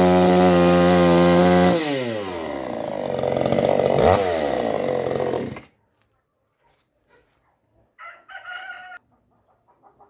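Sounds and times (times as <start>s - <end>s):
rooster crowing: 8.0s - 9.0s.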